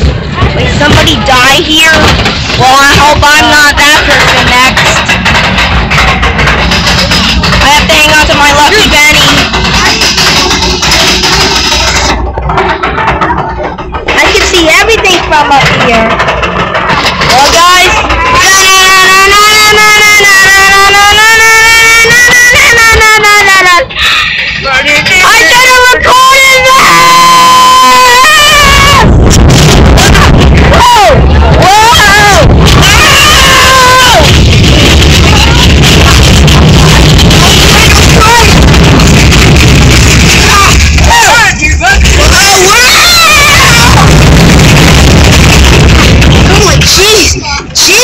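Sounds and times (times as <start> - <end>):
roller coaster rush and rattle: 0.0 - 48.0.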